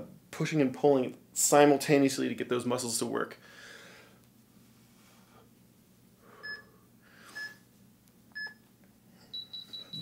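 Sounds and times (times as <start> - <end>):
short electronic beeps: 9.3 - 10.0.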